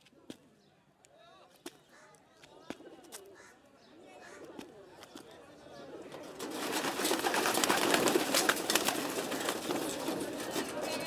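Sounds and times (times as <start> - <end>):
faint bird calls: 1.7 - 4.8
pigeons cooing: 5.5 - 11.0
pigeon wings flapping: 6.1 - 11.0.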